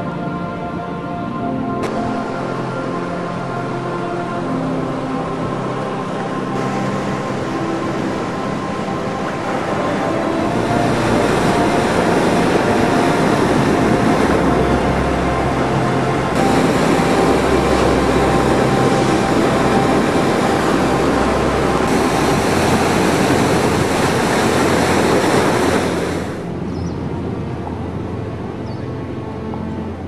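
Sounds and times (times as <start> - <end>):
sea surf breaking over rocks: 1.8 - 26.6.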